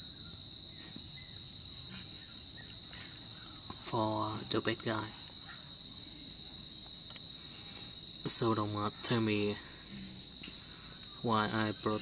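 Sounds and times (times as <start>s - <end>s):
insect trilling: 0.0s - 12.0s.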